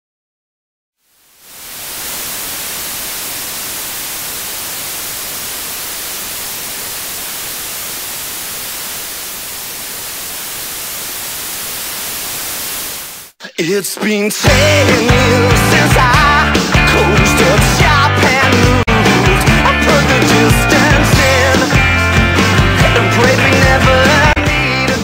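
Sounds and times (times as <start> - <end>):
television static hiss: 1.0 - 13.4.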